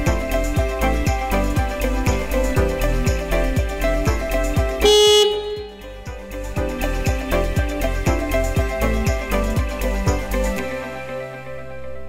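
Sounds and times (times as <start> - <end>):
background music: 0.0 - 12.0
loader horn beep: 4.8 - 6.0.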